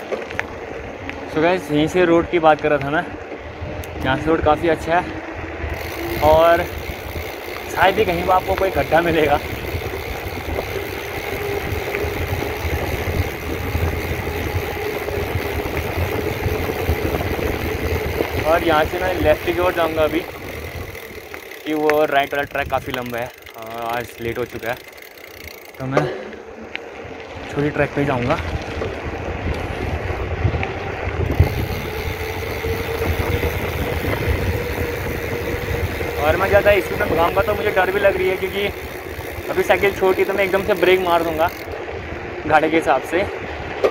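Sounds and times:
wind buffeting microphone: 0.0s - 25.5s, 26.5s - 43.9s
bike tyres rolling on asphalt: 0.0s - 43.9s
bike bump: 24.8s - 26.8s.

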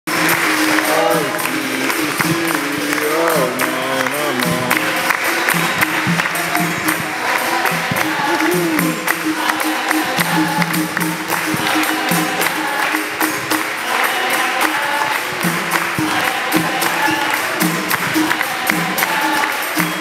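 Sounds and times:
hand clapping: 0.1s - 20.0s
pandeiro jingles: 0.1s - 20.0s
voices singing: 0.1s - 20.0s.

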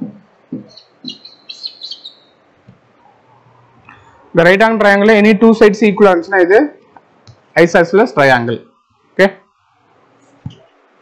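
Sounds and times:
bird chirping: 0.5s - 4.2s.

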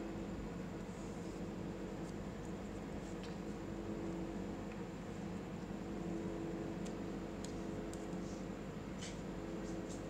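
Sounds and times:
low hum with faint hiss: 0.0s - 10.0s.

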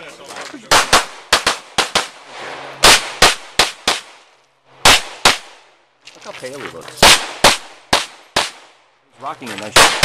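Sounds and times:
pistol shots: 0.7s - 2.2s, 2.8s - 4.2s, 4.8s - 5.6s, 7.0s - 8.8s, 9.7s - 10.0s.

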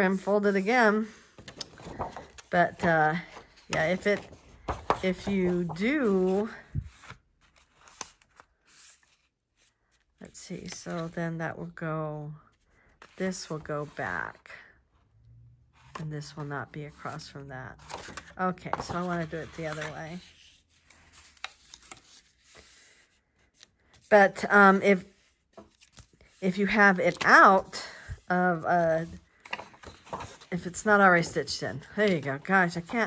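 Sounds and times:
paper rustling and sliding: 0.1s - 9.7s, 17.8s - 33.0s.

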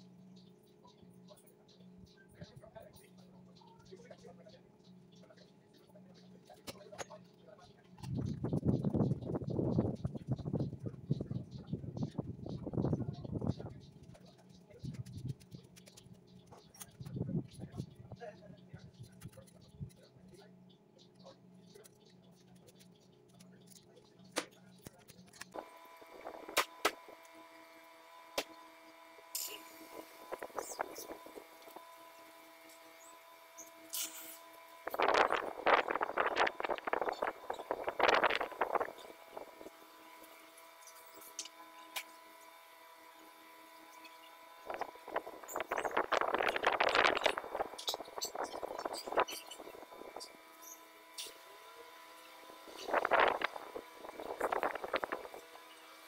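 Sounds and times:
steady hum of held tones: 0.0s - 56.0s
voices talking: 0.7s - 27.8s, 34.9s - 40.1s, 44.6s - 56.0s.

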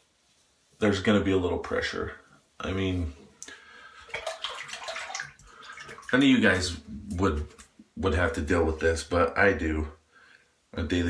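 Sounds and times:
water splashing from tap: 4.0s - 6.6s.

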